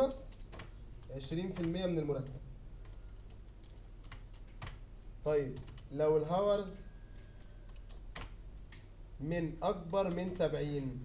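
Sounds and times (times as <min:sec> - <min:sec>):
computer keyboard clicks: 0:00.3 - 0:04.8, 0:05.6 - 0:05.9, 0:07.1 - 0:08.9.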